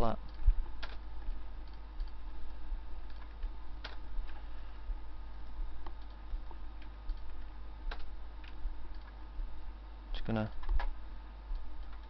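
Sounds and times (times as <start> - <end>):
keyboard clicks: 0.0 - 2.2, 3.0 - 4.0, 5.8 - 9.2, 10.3 - 11.0, 11.6 - 12.0
low electrical hum: 0.0 - 12.0
computer mouse clicks: 0.2 - 2.2, 3.0 - 4.4, 5.4 - 9.2, 10.4 - 11.0, 11.6 - 12.0.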